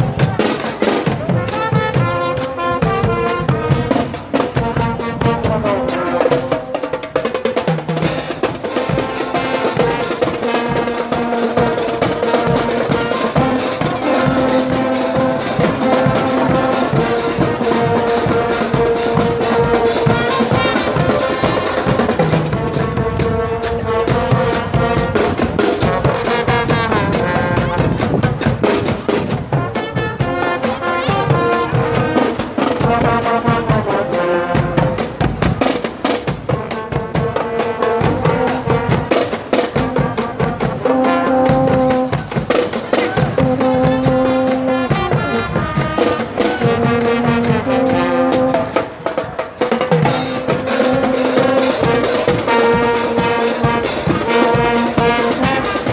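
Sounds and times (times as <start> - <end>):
marching drums and cymbals: 0.0 - 55.9
trumpets and trombones: 0.0 - 55.9.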